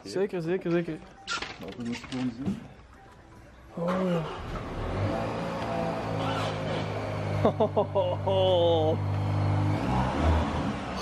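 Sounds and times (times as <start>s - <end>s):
car engine starting and idling: 3.7s - 7.9s.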